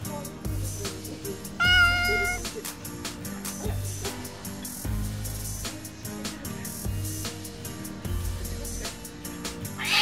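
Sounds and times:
cat meow: 1.6 - 2.4, 9.8 - 10.0.

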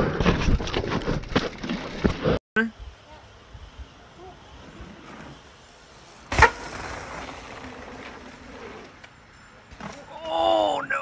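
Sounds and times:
bike clattering on rocks: 0.2 - 2.4
bike tyres scuffing: 4.8 - 10.1.

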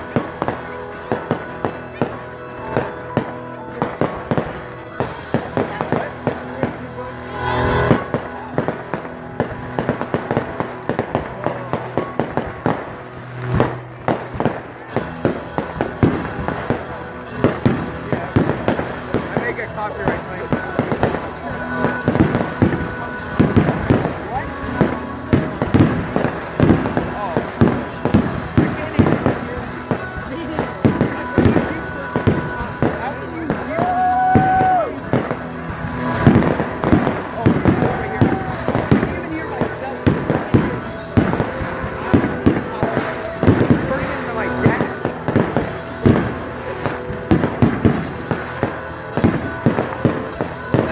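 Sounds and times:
fireworks popping and banging: 0.0 - 50.9
music: 0.0 - 50.9
voices: 0.0 - 50.9.

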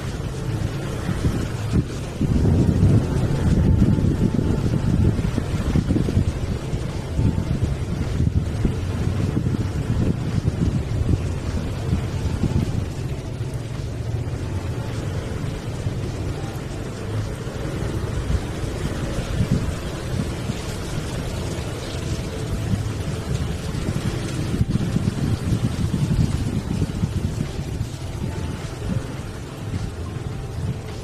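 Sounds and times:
motorcycle engine rumble: 0.0 - 31.0
road noise: 0.0 - 31.0.

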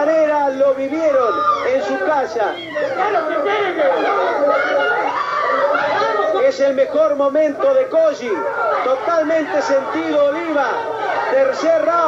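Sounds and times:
people chattering excitedly: 0.0 - 12.0.

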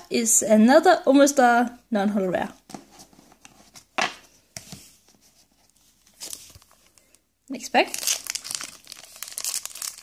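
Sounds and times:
cards and foil pack rustling: 7.8 - 10.0.

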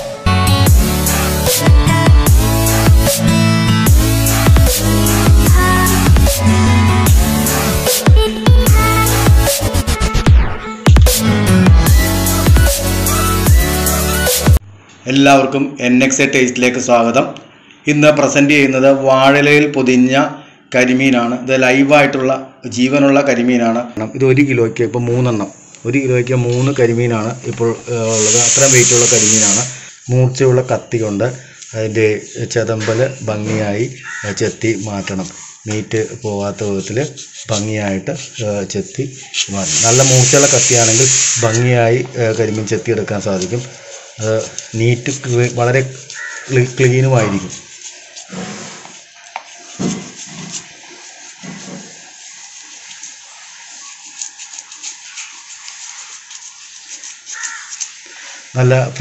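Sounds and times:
person talking: 15.0 - 47.7
loud steady hissing noise: 24.0 - 59.0
knife scraping fish scales: 43.4 - 58.5.

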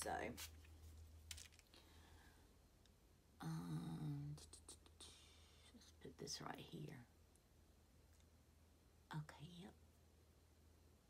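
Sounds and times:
brush sweeping on skin: 0.1 - 1.0
person humming: 3.4 - 5.1.

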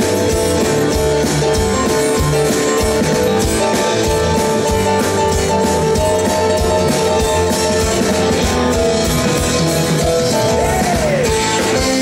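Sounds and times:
bass guitar: 0.0 - 12.0
drum kit: 0.0 - 12.0
electric guitars: 0.0 - 12.0
keyboards: 0.0 - 12.0.

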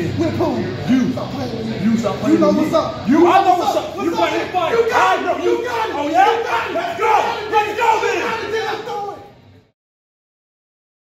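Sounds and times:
men yelling in an argument: 2.5 - 9.3.

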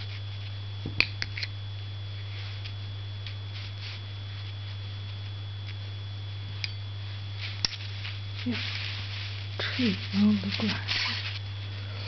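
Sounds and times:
low electrical hum: 0.0 - 12.0
thin high whine: 0.0 - 12.0.

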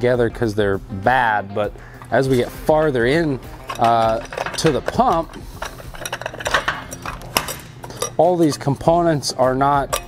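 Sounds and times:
metal parts clinking and scraping: 3.2 - 8.9.

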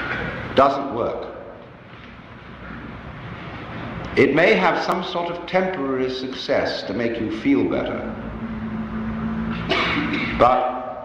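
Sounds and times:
faint steady hum: 0.0 - 11.0
low steady rumble: 1.2 - 11.0.

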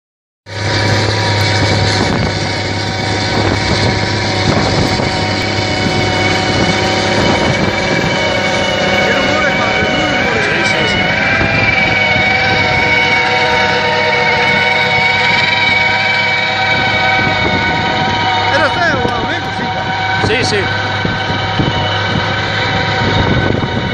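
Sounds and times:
rotary plough churning soil: 0.5 - 23.9
steady high-pitched whine: 0.5 - 23.9
tractor diesel engine under load: 0.5 - 23.9.

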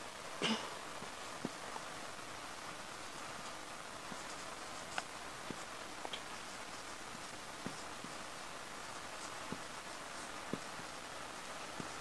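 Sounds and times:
background hiss: 0.0 - 12.0
marker scratching on whiteboard: 2.9 - 12.0.

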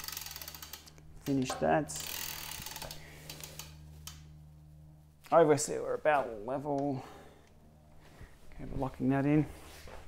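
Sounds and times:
bicycle drivetrain ticking: 0.0 - 1.4, 2.0 - 4.2.

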